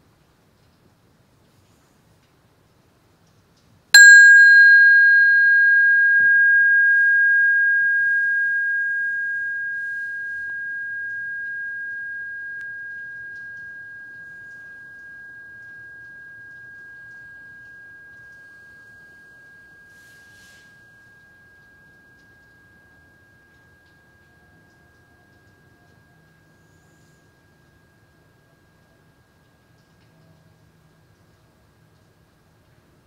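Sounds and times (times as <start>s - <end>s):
metal meditation bell ringing: 4.0s - 30.4s.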